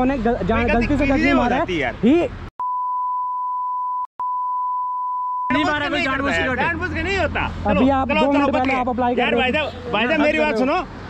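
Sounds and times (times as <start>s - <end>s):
censor bleep tone: 2.6s - 5.6s.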